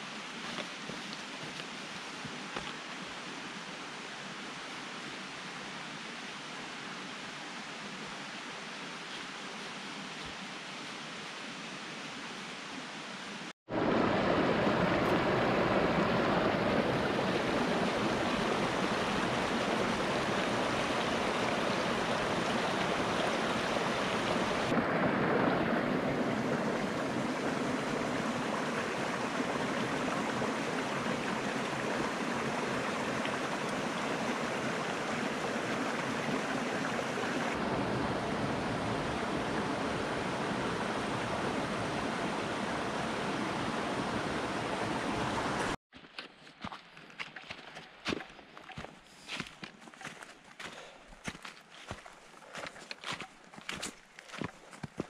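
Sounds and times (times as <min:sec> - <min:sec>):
stream splashing over stones: 0:00.0 - 0:12.2, 0:13.7 - 0:45.8.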